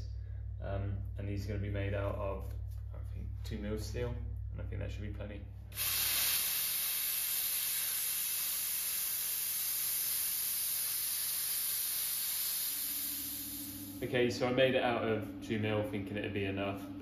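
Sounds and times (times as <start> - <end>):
plasma cutter hissing: 5.8 - 14.0.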